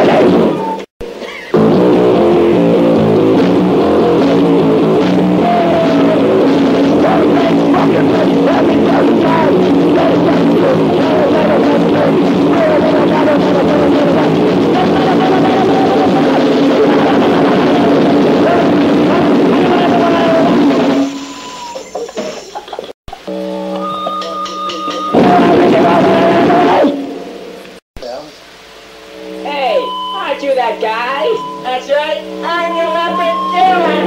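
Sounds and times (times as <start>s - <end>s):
band playing: 0.0s - 21.9s, 23.3s - 27.4s, 29.1s - 34.0s
distorted electric guitar riffing: 0.0s - 21.9s, 23.2s - 27.5s, 29.1s - 34.0s.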